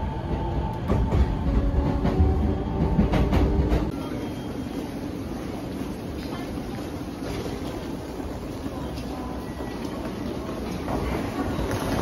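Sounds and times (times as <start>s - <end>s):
hubbub of people walking: 3.2s - 12.0s.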